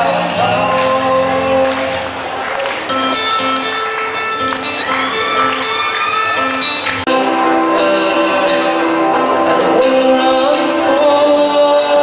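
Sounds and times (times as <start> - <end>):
singing into microphones: 0.0 - 2.4, 4.8 - 12.0
live band with guitars: 0.0 - 12.0.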